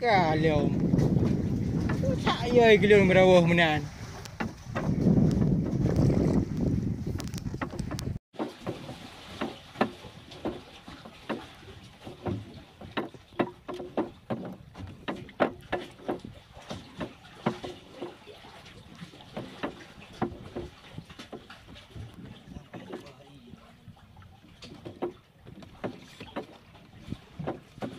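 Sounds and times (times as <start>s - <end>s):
wind rumble on microphone: 0.0s - 8.2s, 26.8s - 27.9s
waves slapping against hull: 0.0s - 27.9s.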